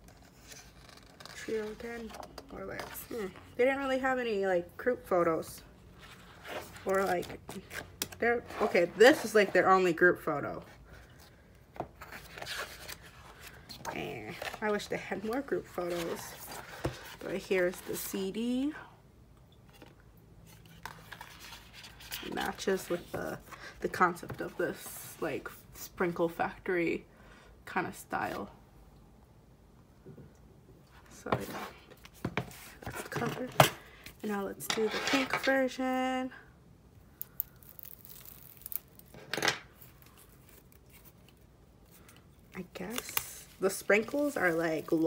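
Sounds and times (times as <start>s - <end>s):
plastic wrap crinkle: 37.2s - 42.0s.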